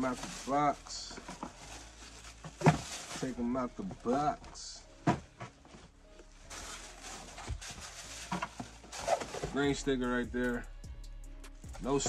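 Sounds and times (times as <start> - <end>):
plastic bag rustling: 0.0 - 9.6.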